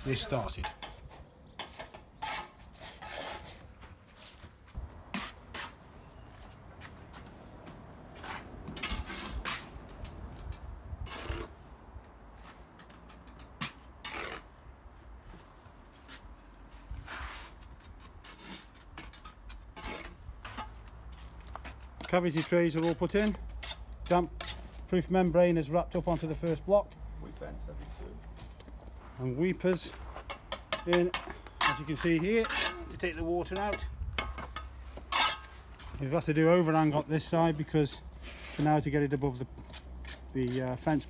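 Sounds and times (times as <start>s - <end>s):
trowel scraping mortar: 1.6s - 3.6s, 8.8s - 9.8s, 11.0s - 11.7s, 12.8s - 14.5s, 17.2s - 20.8s, 22.0s - 24.8s, 30.3s - 33.8s, 34.5s - 35.8s, 38.3s - 41.0s.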